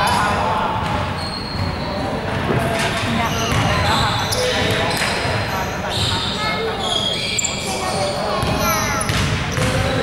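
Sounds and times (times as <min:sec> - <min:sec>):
sneakers squeaking on floor: 0:00.0 - 0:10.0
basketball bouncing: 0:01.6 - 0:03.9, 0:08.4 - 0:10.0.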